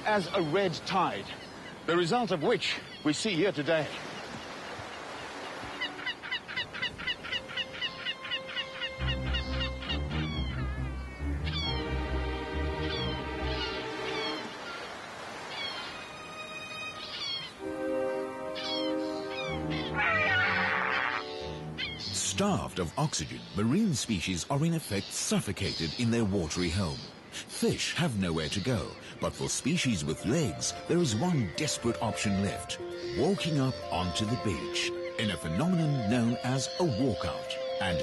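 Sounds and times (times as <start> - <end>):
seagulls calling: 0.0 - 38.0
background music with low notes: 7.4 - 14.5, 16.1 - 23.8, 29.3 - 38.0.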